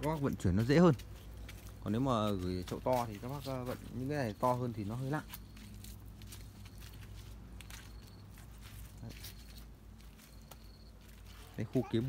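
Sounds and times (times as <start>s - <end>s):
footsteps on ground: 0.0s - 12.0s.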